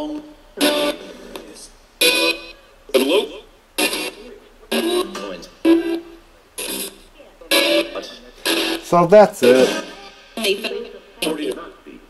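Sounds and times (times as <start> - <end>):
chopped radio voice and music: 0.6 - 12.0
radio static: 3.0 - 12.0.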